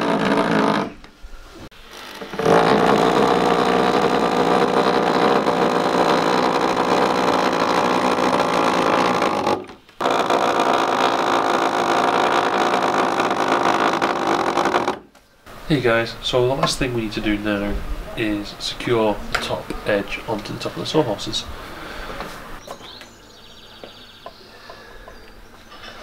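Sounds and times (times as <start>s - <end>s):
electric drill driving screws: 0.0s - 1.0s, 1.8s - 15.1s.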